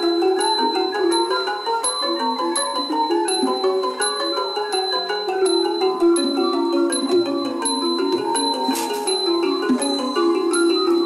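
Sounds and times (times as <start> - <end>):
mallet instruments playing: 0.0 - 11.0.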